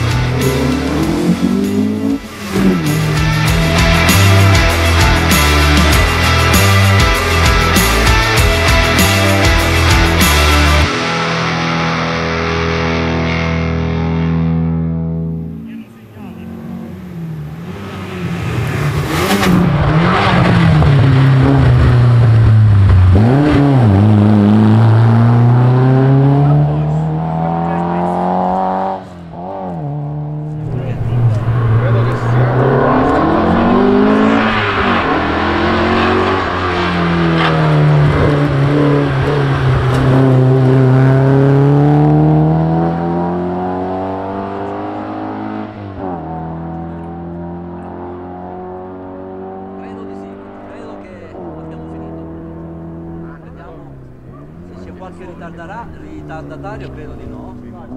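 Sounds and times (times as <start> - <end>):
background music: 0.0 - 15.8
rally car engine revving hard: 0.0 - 57.9.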